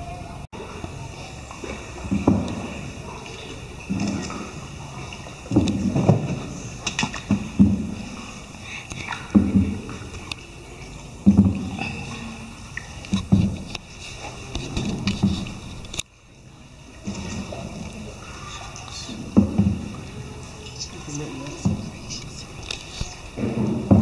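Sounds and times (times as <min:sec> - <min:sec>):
faint voices: 0:00.0 - 0:06.8, 0:07.4 - 0:13.2, 0:16.4 - 0:24.0
water sloshing around a boat: 0:00.0 - 0:24.0.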